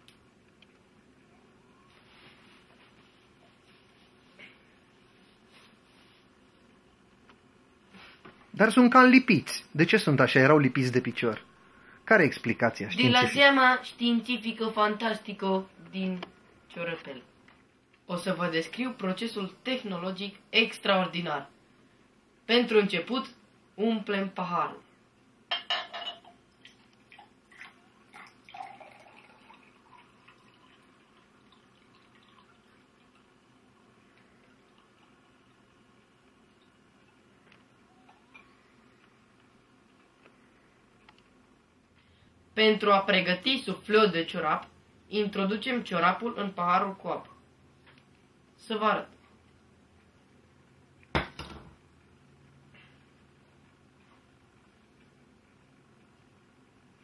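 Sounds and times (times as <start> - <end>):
water pouring into a glass: 26.2 - 35.2.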